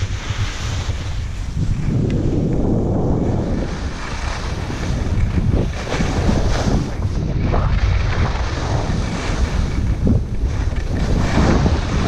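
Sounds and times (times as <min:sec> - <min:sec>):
skis scraping on snow: 0:00.0 - 0:12.0
wind rumbling on microphone: 0:00.0 - 0:12.0.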